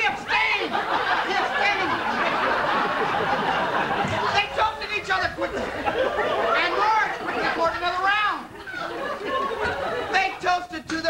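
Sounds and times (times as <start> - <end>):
indistinct talking voices: 0.0 - 11.0.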